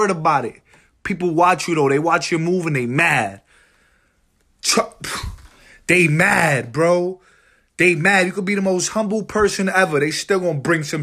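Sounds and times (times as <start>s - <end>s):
man speaking: 0.0s - 3.5s, 4.6s - 11.0s
soft breath noise: 3.4s - 5.9s, 7.2s - 7.8s
man's sharp breathy vocal burst: 5.0s - 5.9s.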